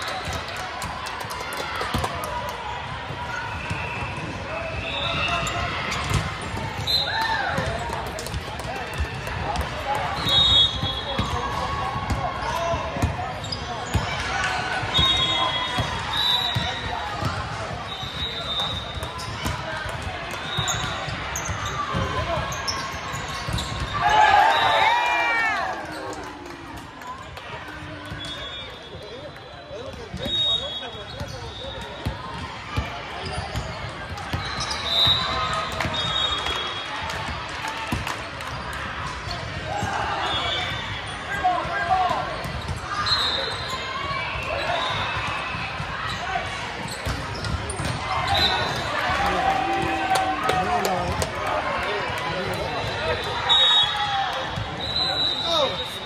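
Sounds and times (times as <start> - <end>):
background chatter: 0.0 - 56.0
volleyballs struck and bouncing: 0.2 - 3.9, 5.2 - 10.2, 45.2 - 53.1.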